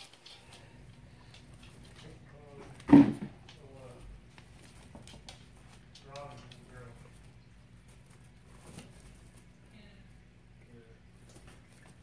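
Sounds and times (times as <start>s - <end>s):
low steady hum: 0.0s - 12.0s.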